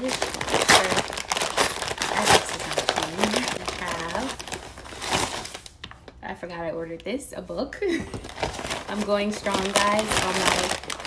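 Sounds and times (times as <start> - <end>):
paper mailer bag crinkling: 0.0 - 5.8, 8.2 - 11.0.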